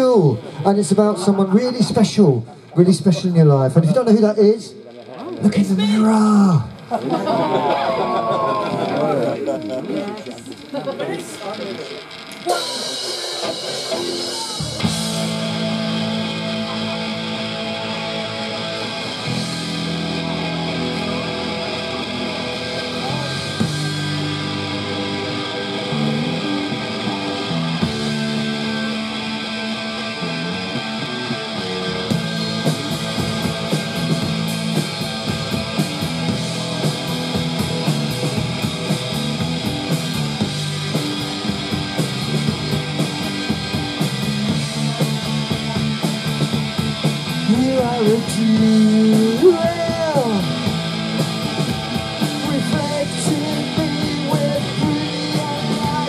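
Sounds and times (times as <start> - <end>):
punk band playing instrumental: 0.0 - 56.0
drums and cymbals hitting fast: 5.5 - 56.0.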